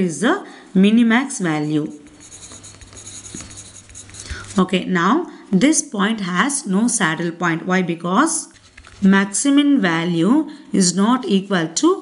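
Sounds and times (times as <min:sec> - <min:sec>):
pencil scratching on paper: 0:01.8 - 0:04.7.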